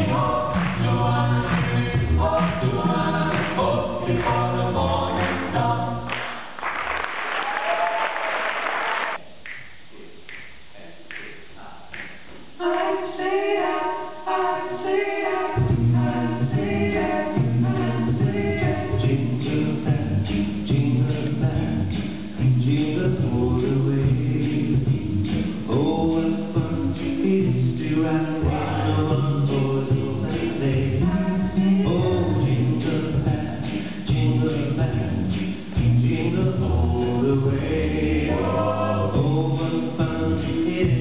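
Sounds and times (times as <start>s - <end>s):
male a cappella group singing: 0.0s - 6.3s, 12.6s - 41.0s.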